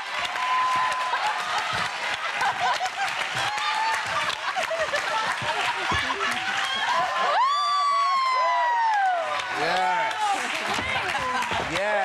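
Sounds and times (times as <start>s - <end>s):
audience cheering and clapping: 0.0s - 12.0s
person whooping: 7.3s - 9.3s.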